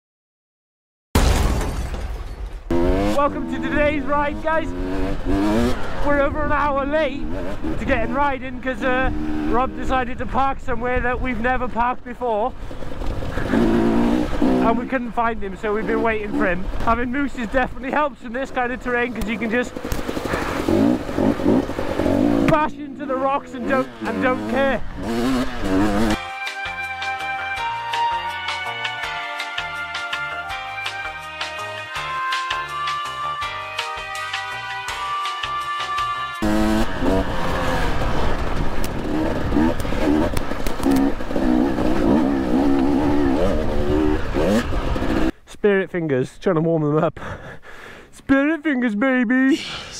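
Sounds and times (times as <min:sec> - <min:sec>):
two-stroke engine revving: 0:02.7 - 0:10.0, 0:12.6 - 0:17.6, 0:18.7 - 0:26.2, 0:36.4 - 0:45.4.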